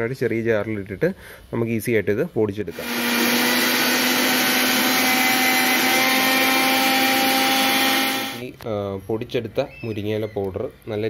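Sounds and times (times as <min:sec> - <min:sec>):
mixer grinder running: 0:02.7 - 0:08.4.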